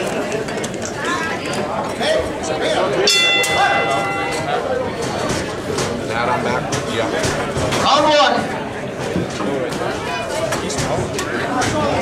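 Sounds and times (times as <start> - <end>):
crowd chatter: 0.0 - 12.0
boxing ring bell: 3.0 - 5.2.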